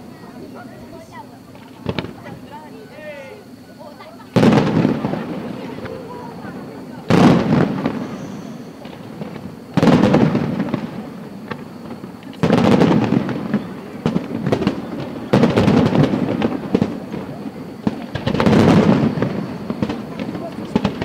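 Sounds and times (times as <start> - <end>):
fireworks crackle: 0.0 - 21.0
fireworks shells bursting: 1.5 - 2.5, 4.3 - 21.0.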